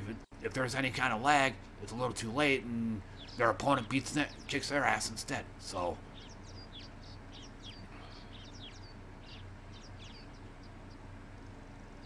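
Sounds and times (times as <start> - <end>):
birds chirping: 0.0 - 12.0
faint low hum: 0.0 - 12.0.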